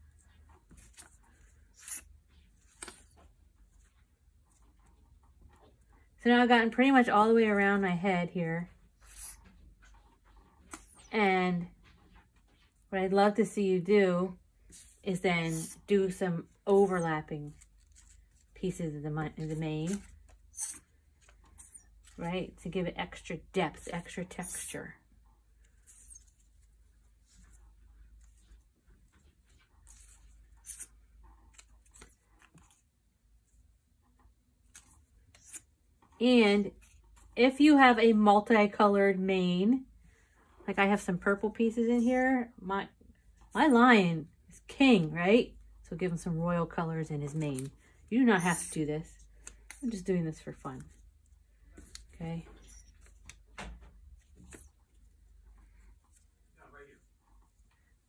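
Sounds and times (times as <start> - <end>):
paper strips rustling: 14.6 - 22.3, 25.5 - 33.6, 47.2 - 56.6.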